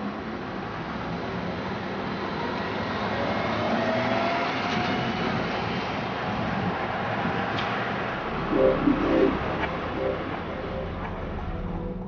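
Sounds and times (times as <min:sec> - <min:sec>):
trolleybus driving past: 0:06.5 - 0:12.0.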